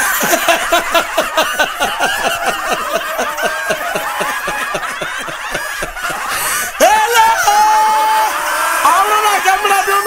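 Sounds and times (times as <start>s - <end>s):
person laughing: 0.0s - 7.2s.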